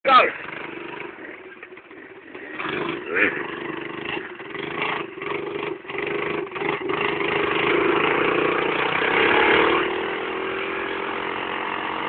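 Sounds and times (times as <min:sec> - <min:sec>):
quad engine running: 0:00.1 - 0:12.0.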